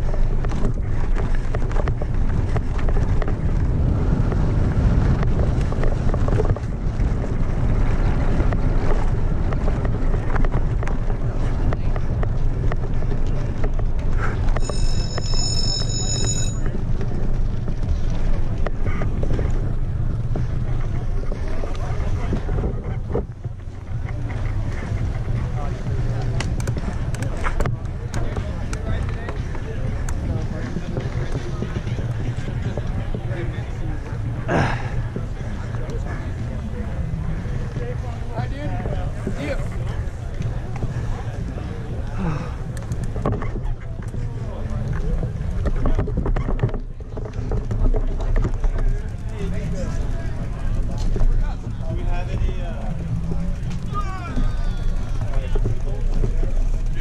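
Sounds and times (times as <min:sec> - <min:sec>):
wind on microphone: 0:00.0 - 0:14.8
mountain bike rattling on dirt: 0:00.0 - 0:57.0
high electronic beep: 0:14.6 - 0:16.6.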